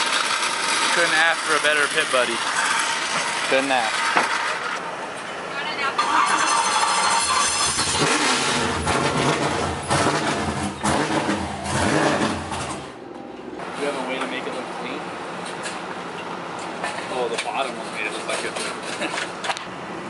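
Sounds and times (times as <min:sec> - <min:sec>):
car engine cranking and starting: 0:00.0 - 0:04.8, 0:06.0 - 0:14.7
engine low rumble: 0:00.0 - 0:20.0
people talking: 0:00.9 - 0:02.4, 0:03.5 - 0:03.9, 0:05.5 - 0:06.1, 0:13.7 - 0:15.1, 0:16.9 - 0:18.7.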